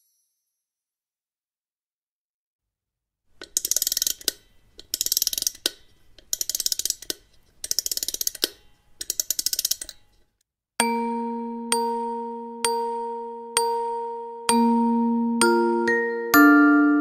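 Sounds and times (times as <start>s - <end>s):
music box key ratchet clicks: 3.4s - 10.2s.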